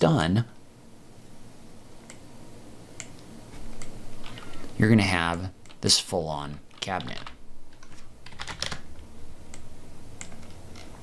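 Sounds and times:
steady low hum: 0:00.0 - 0:11.0
keyboard typing clicks: 0:06.7 - 0:08.8.

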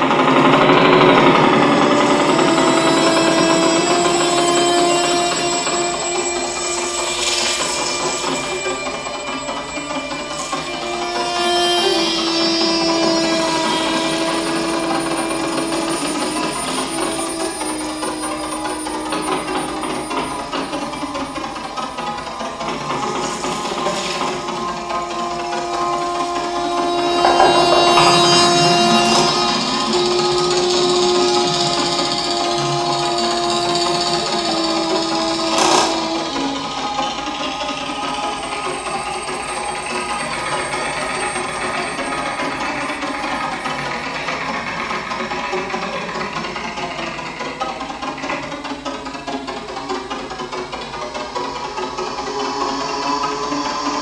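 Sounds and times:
held drone tones: 0:00.0 - 0:54.0
textured electronic wash: 0:00.0 - 0:54.0.

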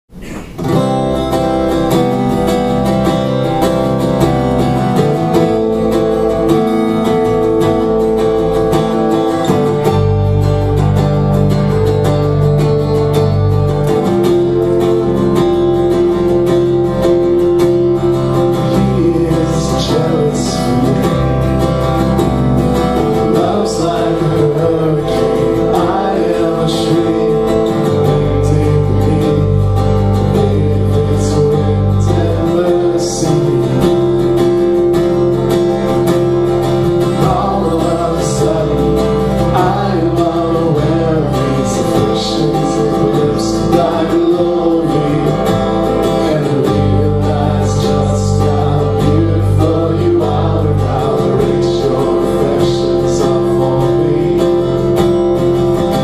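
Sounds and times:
strummed acoustic guitar: 0:00.1 - 0:56.0
electric bass: 0:00.2 - 0:56.0
electric guitar sustained chords: 0:00.7 - 0:56.0
man singing: 0:13.6 - 0:56.0.

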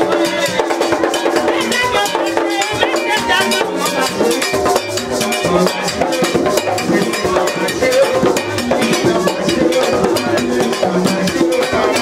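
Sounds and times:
fast drum beat: 0:00.0 - 0:12.0.

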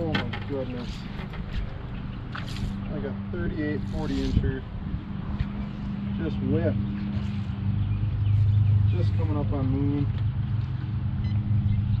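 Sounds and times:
boat motor humming: 0:00.0 - 0:12.0.

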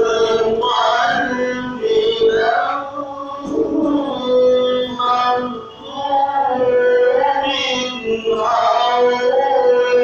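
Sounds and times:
person chanting a devotional song: 0:00.0 - 0:10.0.

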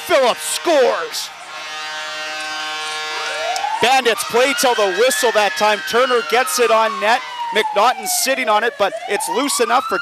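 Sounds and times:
goal horn blaring: 0:00.0 - 0:07.5
siren rising in pitch: 0:00.9 - 0:10.0.

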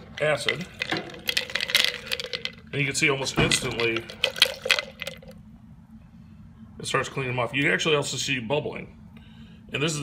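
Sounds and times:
liquid sloshing in cup: 0:00.0 - 0:02.8, 0:03.4 - 0:05.4
coins clicking against plastic cup: 0:00.2 - 0:02.6.

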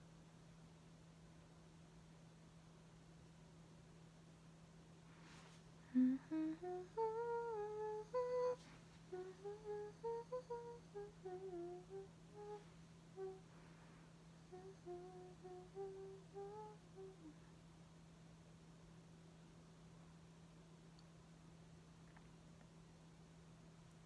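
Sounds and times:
woman humming: 0:05.8 - 0:13.5, 0:14.4 - 0:17.5.

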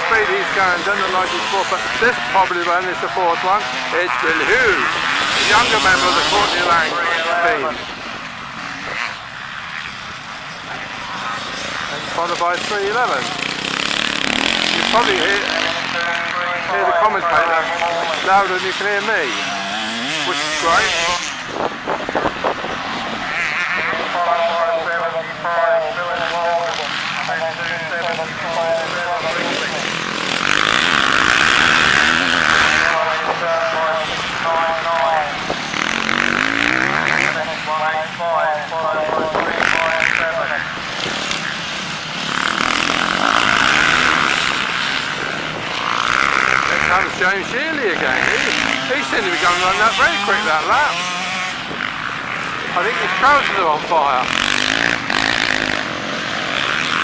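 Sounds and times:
commentator over loudspeakers: 0:00.0 - 0:57.0
motocross bikes racing past: 0:00.0 - 0:57.0.

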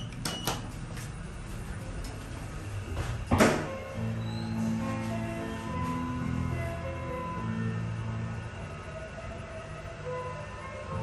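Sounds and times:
lift car humming and rumbling: 0:00.0 - 0:11.0.

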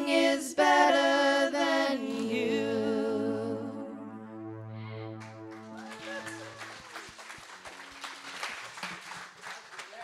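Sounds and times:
band sustained note: 0:02.3 - 0:08.7
congregation clapping: 0:05.2 - 0:10.0.

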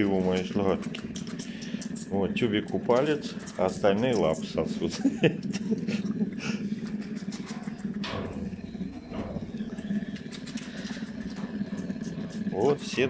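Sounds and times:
bear cubs nursing hum: 0:00.0 - 0:13.0.

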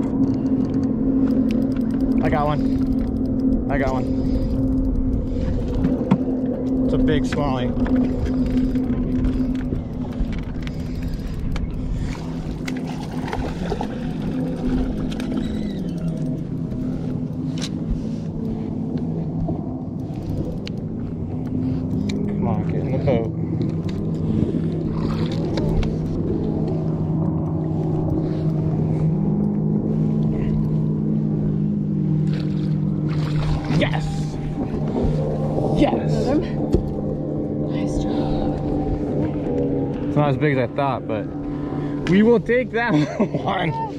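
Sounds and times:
electric trolling motor humming: 0:00.0 - 0:43.9.

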